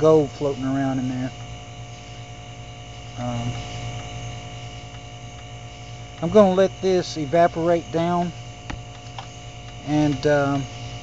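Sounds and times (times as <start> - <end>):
electrical mains hum: 0.0 - 11.0
thin constant tones: 0.0 - 11.0.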